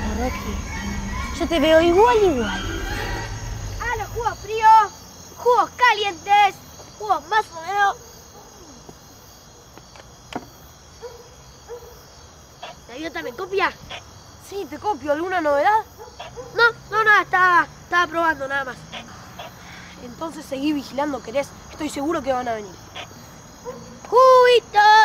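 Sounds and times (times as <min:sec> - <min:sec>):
crickets chirping: 0:00.0 - 0:25.0.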